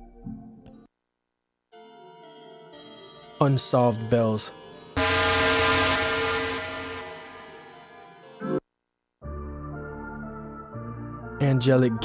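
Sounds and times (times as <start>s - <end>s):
bell-like synth chord: 1.8s - 8.6s.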